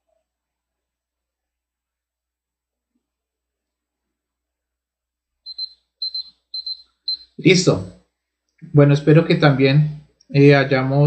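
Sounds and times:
timer alarm beeping: 5.5 - 7.5.

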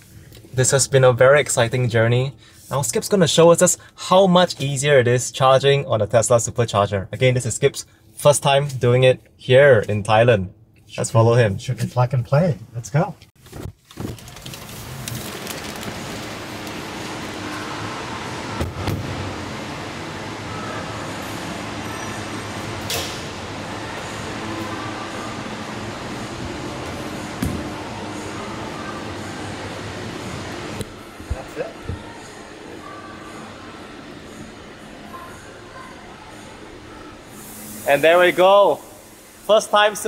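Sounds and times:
rushing background noise: 14.4 - 38.0.

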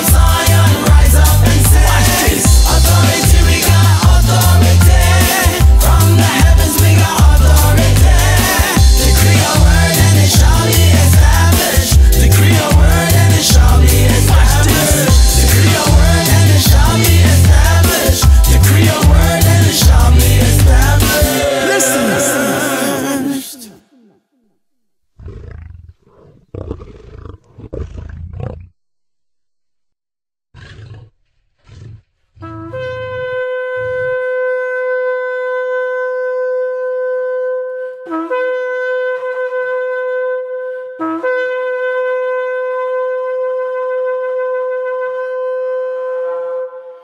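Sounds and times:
deep animal roars: 25.2 - 28.8, 30.5 - 32.0
shofar long blast: 32.4 - 47.0.

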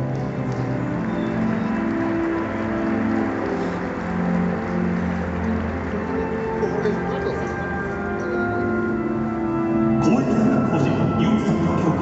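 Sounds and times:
slow ceremonial music over loudspeakers: 0.0 - 12.0
stadium crowd clapping: 0.0 - 12.0.

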